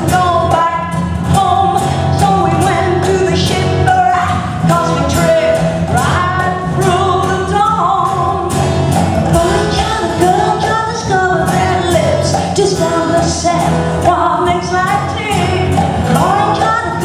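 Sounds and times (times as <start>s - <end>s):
amplified band with steady beat: 0.0s - 17.0s
woman singing into a microphone: 0.0s - 17.0s.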